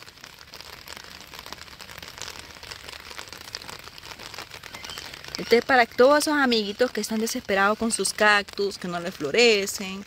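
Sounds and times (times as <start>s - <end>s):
faint crackling and ticking: 0.0s - 10.0s.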